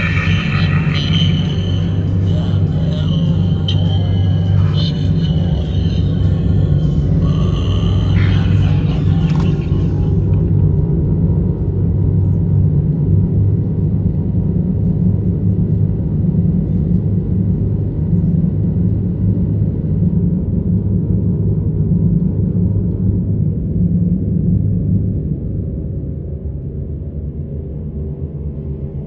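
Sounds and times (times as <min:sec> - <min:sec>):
eerie music: 0:00.0 - 0:16.6
low rumble: 0:00.0 - 0:29.0.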